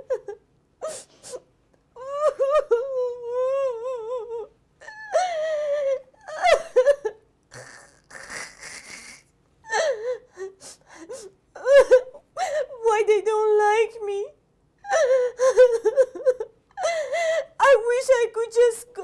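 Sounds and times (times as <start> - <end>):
woman crying and wailing: 2.0 - 13.1, 14.8 - 18.7.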